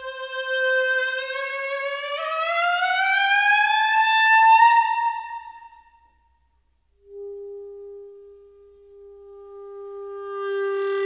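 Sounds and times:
steady pure musical note: 4.8s - 11.0s.

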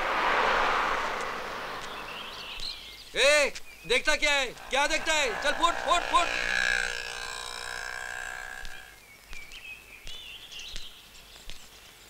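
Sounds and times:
auto-rickshaw engine passing: 0.0s - 3.0s, 4.6s - 8.9s
bird chirps: 1.7s - 4.0s.

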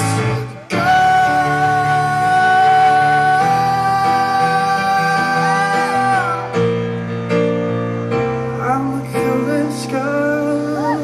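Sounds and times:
man singing a long note: 0.0s - 6.7s, 8.5s - 11.0s
electric keyboard chords: 0.0s - 11.0s.

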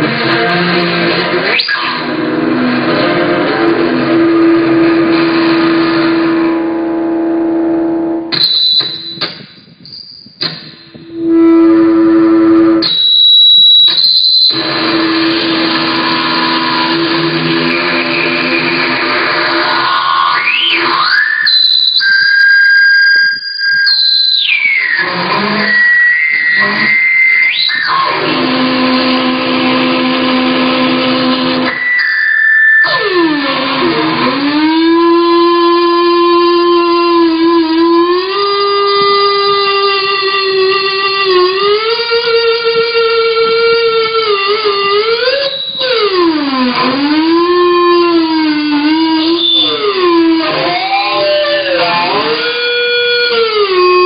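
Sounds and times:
distorted electric guitar sustained notes: 0.0s - 54.0s
shrill guitar feedback squeals: 0.0s - 54.0s.

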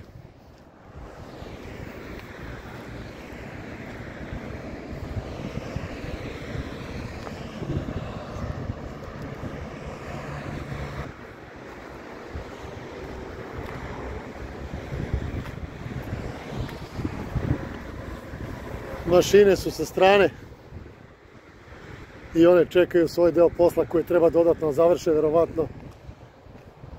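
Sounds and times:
road traffic rumble: 0.0s - 26.9s
steady engine hum: 0.0s - 26.9s
wind buffeting microphone: 0.0s - 26.9s.

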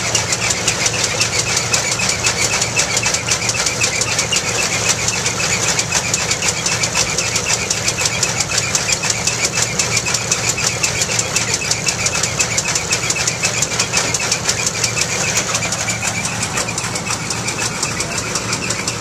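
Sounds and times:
thresher mechanical clatter: 0.0s - 19.0s.

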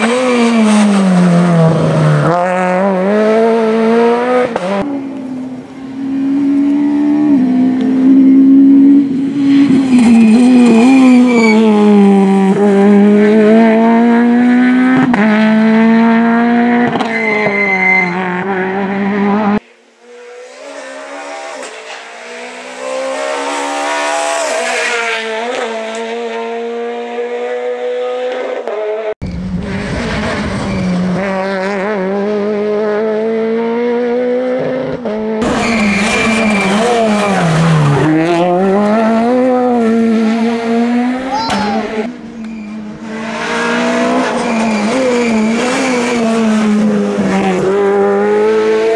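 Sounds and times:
rally car engine revving: 0.0s - 48.9s.

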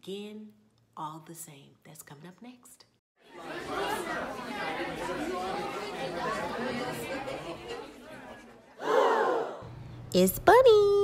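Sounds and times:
many voices chattering: 3.2s - 9.5s.

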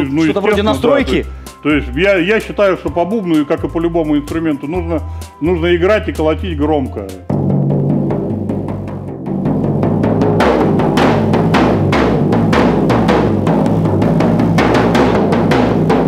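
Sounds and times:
frame drum booming: 7.3s - 16.0s.

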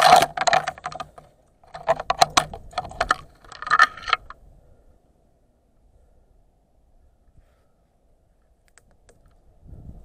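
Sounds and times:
climbing hardware clicking: 0.0s - 4.4s.

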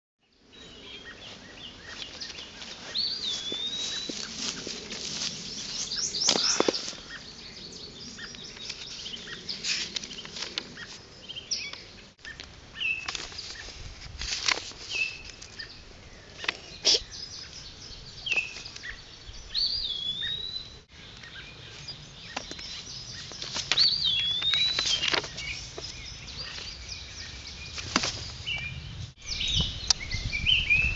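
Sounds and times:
wild birds chirping: 0.2s - 13.8s, 14.8s - 30.9s.

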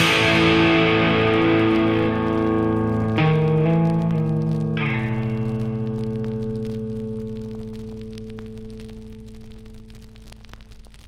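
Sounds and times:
guitar chord ringing out: 0.0s - 9.6s.

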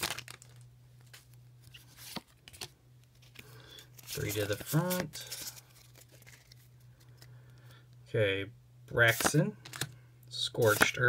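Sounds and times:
trading cards rustling in hands: 0.0s - 7.8s, 9.1s - 10.0s, 10.6s - 11.0s
steady low hum: 0.0s - 11.0s.

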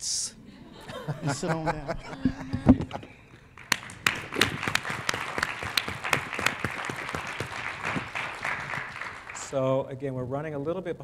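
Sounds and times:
person laughing: 0.9s - 3.1s
audience clapping: 3.5s - 9.6s.

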